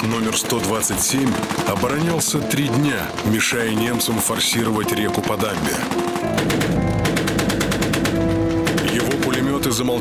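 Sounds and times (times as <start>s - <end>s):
background music with held notes: 0.0s - 10.0s
machine gun firing: 0.0s - 10.0s.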